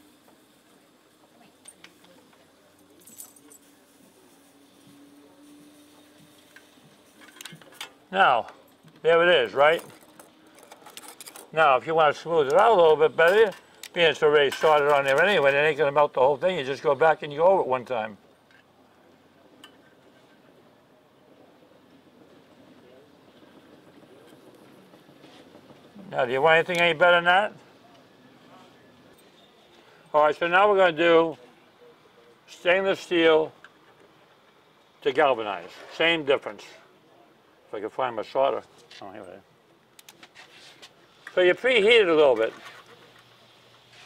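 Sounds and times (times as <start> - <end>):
distant voices: 0.1 - 40.3.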